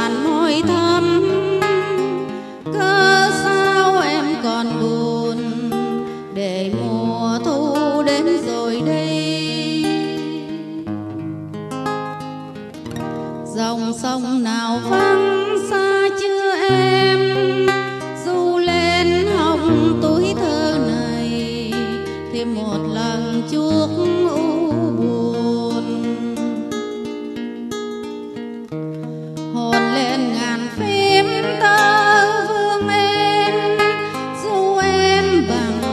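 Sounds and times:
acoustic guitar plucked notes: 0.0 - 35.9.

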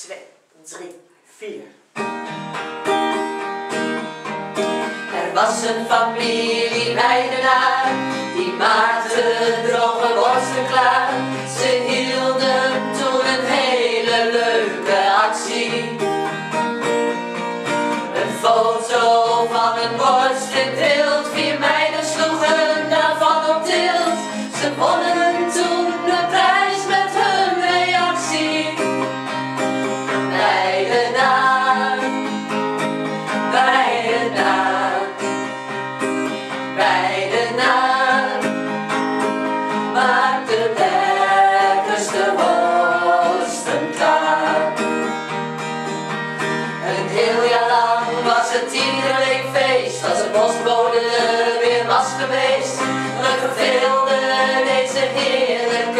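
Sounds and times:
acoustic guitar: 0.0 - 55.9
women singing together: 5.1 - 16.2, 18.1 - 29.2, 30.1 - 32.4, 33.3 - 35.4, 36.5 - 38.8, 39.8 - 45.2, 46.8 - 55.9.

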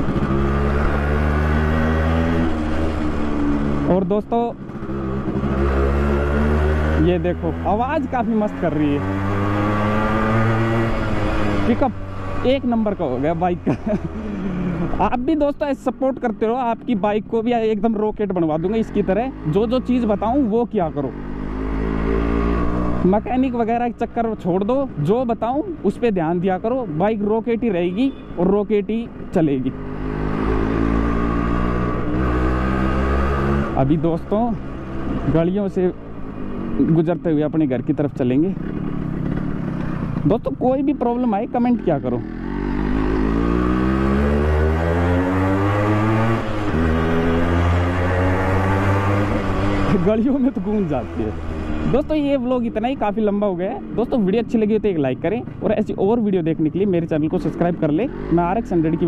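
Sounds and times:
two-stroke motorcycle engine: 28.5 - 59.0.

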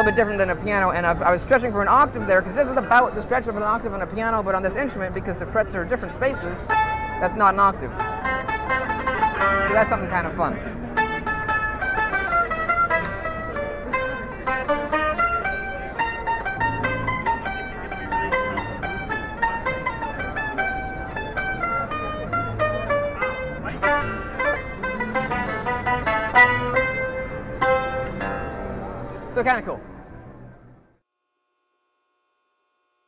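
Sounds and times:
amplified plucked zither melody: 0.0 - 29.6.

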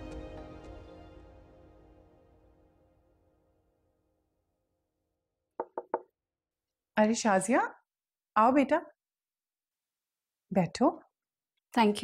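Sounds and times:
knocks on a door: 5.6 - 6.1.

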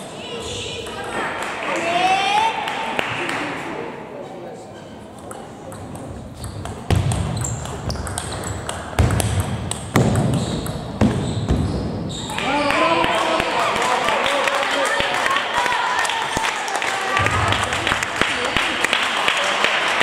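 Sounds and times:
voices: 0.0 - 6.2.

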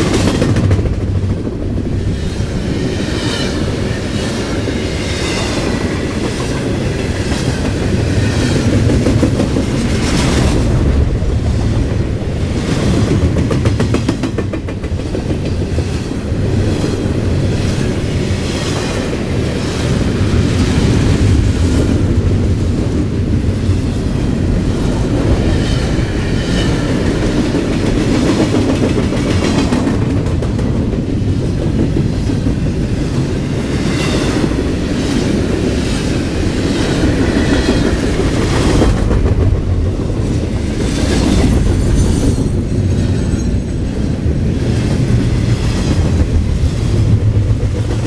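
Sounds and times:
train wheels rumbling on rails: 0.0 - 48.0
wheels clickety-clack: 0.0 - 48.0.

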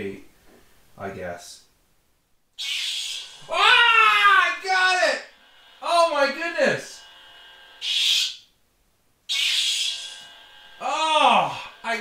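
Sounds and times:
lightsaber hissing burst: 2.6 - 3.6, 7.8 - 8.4, 9.3 - 12.0
lightsaber hum: 2.6 - 4.7, 9.3 - 12.0.

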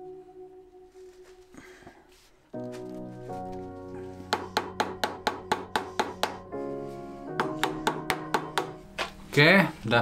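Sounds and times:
background music: 0.0 - 10.0
mallet knocking on wood: 4.3 - 6.4, 7.4 - 8.8.

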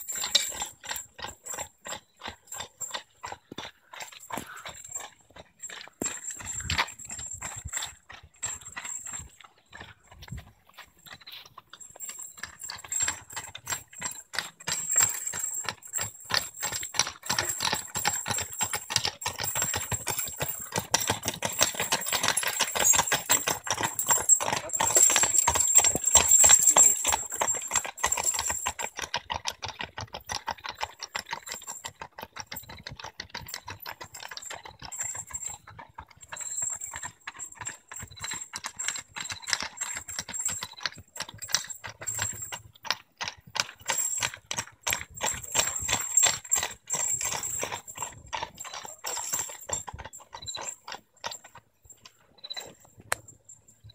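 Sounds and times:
horse hooves clip-clopping: 0.0 - 53.9
wagon rattling: 0.0 - 53.9.

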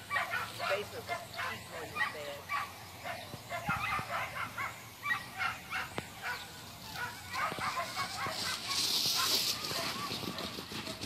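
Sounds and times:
dogs yapping and barking: 0.0 - 11.0.

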